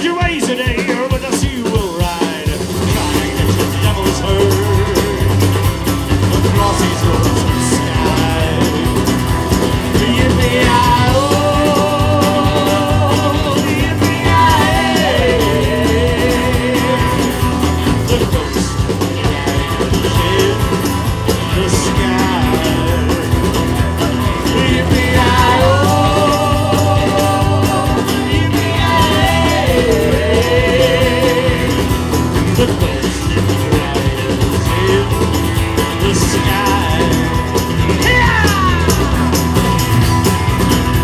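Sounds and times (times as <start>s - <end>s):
person singing: 0.0s - 5.5s, 6.4s - 40.2s
acoustic guitar: 0.0s - 41.0s
bass guitar: 0.0s - 41.0s
drums: 0.0s - 41.0s
keyboard: 0.0s - 41.0s
live country rock band: 0.0s - 41.0s
electric guitar: 1.6s - 41.0s
tambourine shaking: 2.9s - 41.0s.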